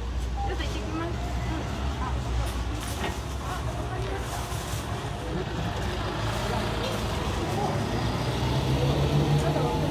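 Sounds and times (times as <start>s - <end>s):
bus engine pulling away: 0.0s - 9.9s.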